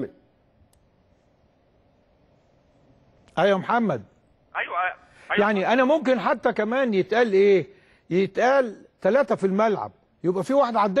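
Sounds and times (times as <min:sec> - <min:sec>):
faint click: 0:00.7 - 0:00.9
man's voice: 0:04.6 - 0:07.3.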